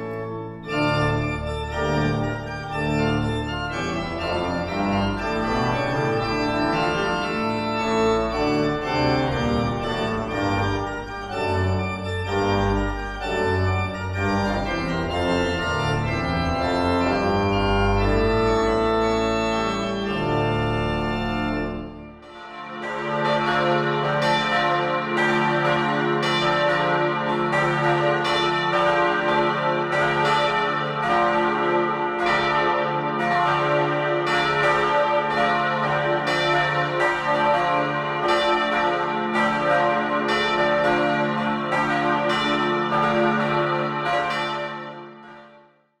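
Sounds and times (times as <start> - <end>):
church bells pealing: 0.0 - 45.8.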